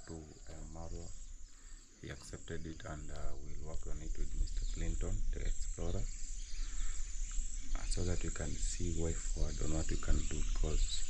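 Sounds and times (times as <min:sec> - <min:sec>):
insects chirring: 0:00.0 - 0:11.0
low rumble: 0:02.0 - 0:11.0.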